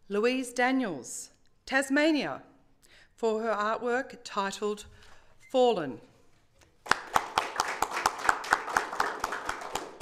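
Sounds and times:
hands clapping: 6.7s - 10.0s.

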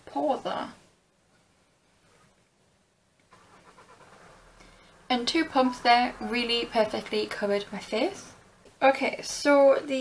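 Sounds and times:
faint soft rustle: 1.2s - 4.9s.

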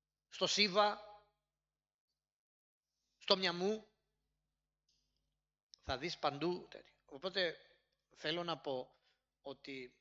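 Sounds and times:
man talking: 5.8s - 7.6s, 8.2s - 8.9s, 9.5s - 10.0s.

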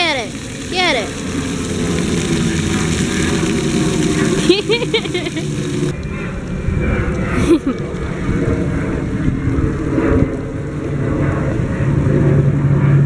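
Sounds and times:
fountain jet spraying water: 0.0s - 12.4s
wind rumbling on microphone: 0.0s - 13.0s.

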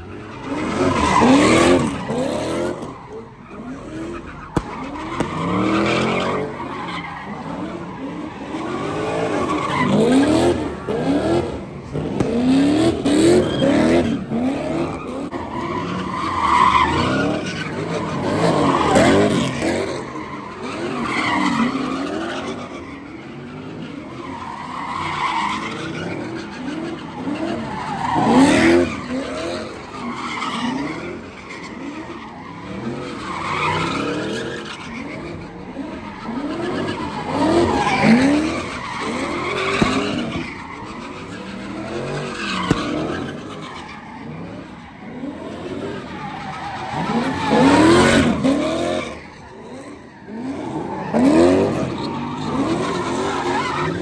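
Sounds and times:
car engines revving: 0.0s - 54.0s
tyres skidding and screeching: 0.0s - 54.0s.

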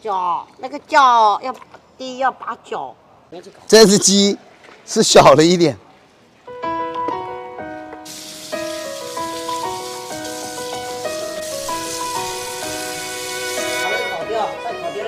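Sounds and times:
music with held notes: 6.5s - 15.0s
steady hiss: 8.0s - 14.2s.

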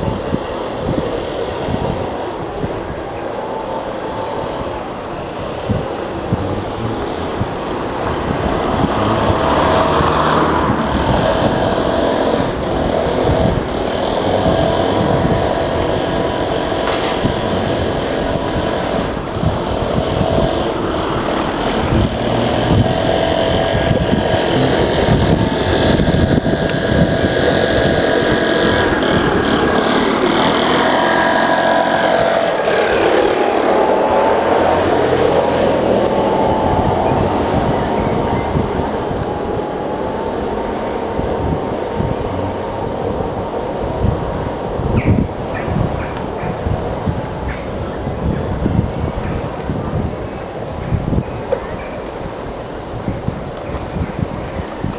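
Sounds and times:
steady whine: 0.0s - 54.9s
tyre and wind rumble: 0.0s - 54.9s.

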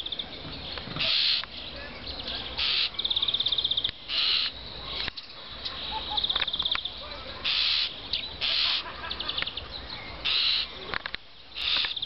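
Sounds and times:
starling screeches: 10.2s - 10.7s.

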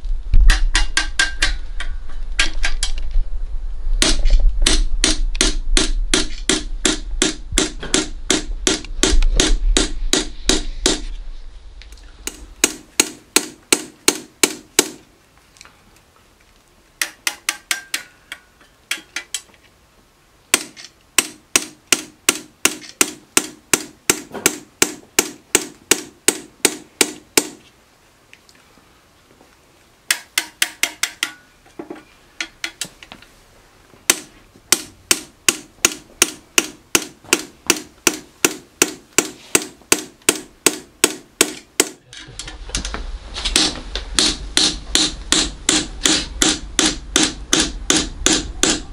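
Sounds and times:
low hum: 0.0s - 13.3s
hammer tapping chisel into copper: 17.0s - 19.3s, 30.1s - 31.4s.

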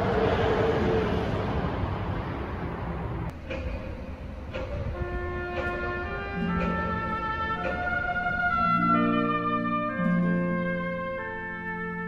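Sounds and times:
faint soft music notes: 3.3s - 12.0s.

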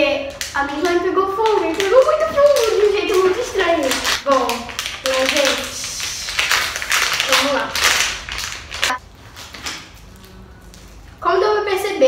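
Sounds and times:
plastic packet crinkling: 0.0s - 11.2s
girl murmuring: 10.1s - 10.9s.

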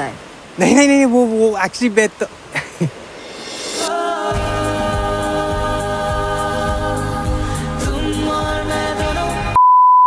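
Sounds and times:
film music: 3.3s - 9.6s.

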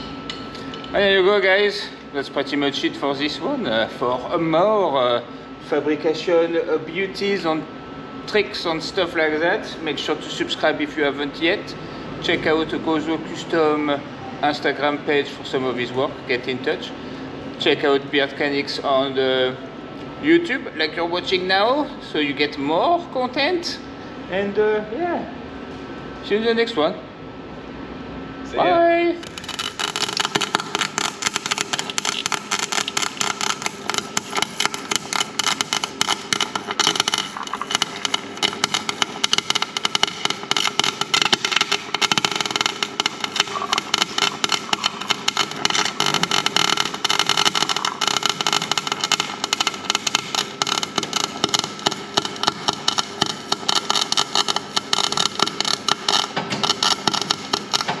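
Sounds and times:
welder arc crackling: 28.8s - 58.0s.

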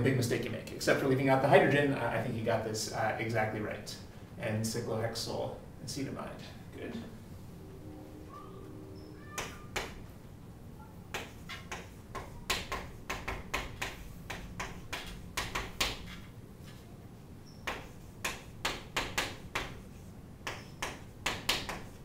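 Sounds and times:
chalk writing on chalkboard: 11.1s - 16.8s, 17.6s - 22.0s.

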